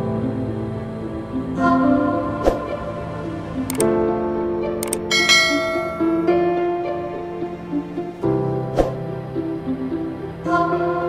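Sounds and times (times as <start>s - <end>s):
slow instrumental music: 0.0s - 11.0s
short bright clicks: 4.8s - 6.1s.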